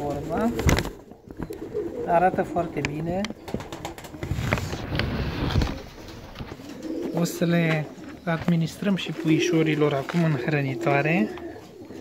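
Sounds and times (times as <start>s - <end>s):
pigeons cooing: 0.0s - 12.0s.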